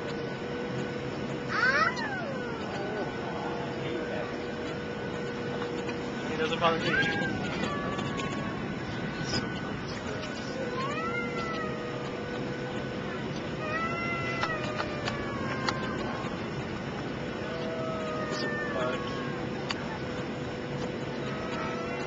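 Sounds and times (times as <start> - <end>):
airliner cabin engine noise: 0.0 - 22.0
rising and falling cries: 1.5 - 3.7, 6.7 - 12.2, 13.6 - 16.6, 17.2 - 19.6.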